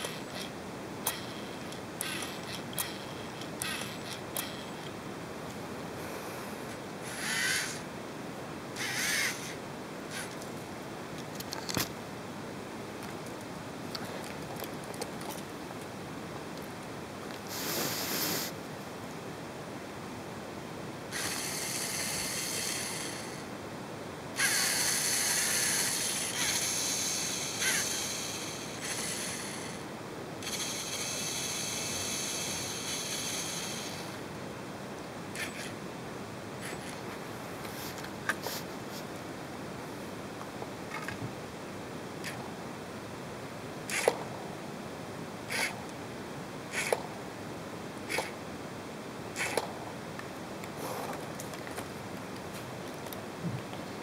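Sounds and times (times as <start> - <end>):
background hiss: 0.0 - 54.0
servo motors whirring: 2.0 - 4.7, 7.1 - 7.8, 8.8 - 9.5
harsh bird calls: 8.8 - 9.6.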